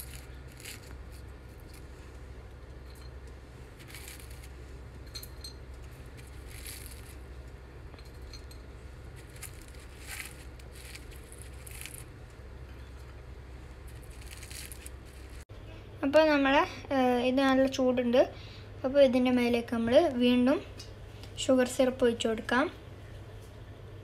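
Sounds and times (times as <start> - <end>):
faint rustling of pastry: 0.0 - 5.0, 5.6 - 15.5
steady low hum: 0.0 - 24.0.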